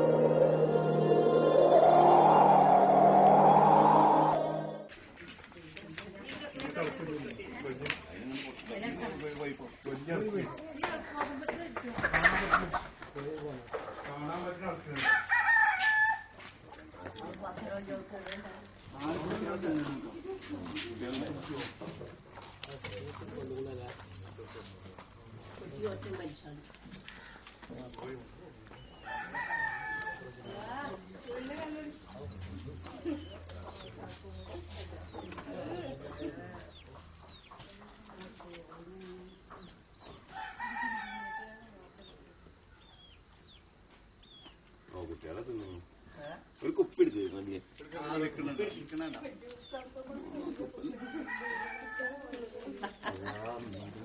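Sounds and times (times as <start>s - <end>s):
rooster crowing: 0.0s - 4.9s, 29.1s - 30.4s, 51.1s - 52.2s.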